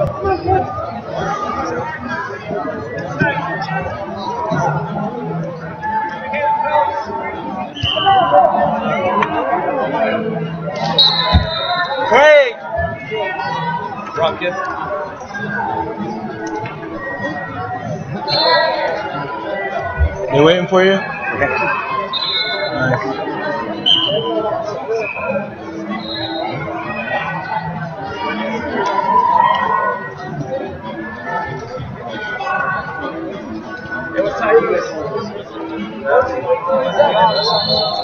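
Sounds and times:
people chattering: 0.0s - 38.0s
voices talking and calling out: 0.0s - 38.0s.

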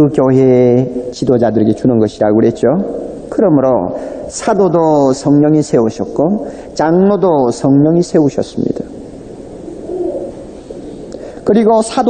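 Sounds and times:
large hall room noise: 0.0s - 12.0s.

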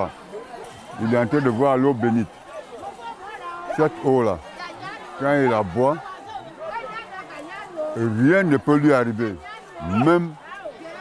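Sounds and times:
faint background chatter: 0.0s - 11.0s.

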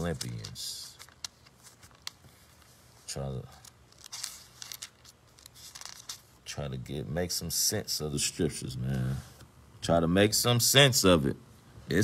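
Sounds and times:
paper pages turning: 0.0s - 6.4s.

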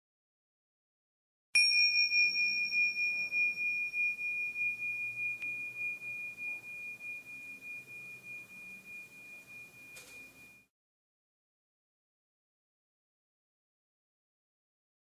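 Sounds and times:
struck chime ringing: 1.6s - 10.7s.

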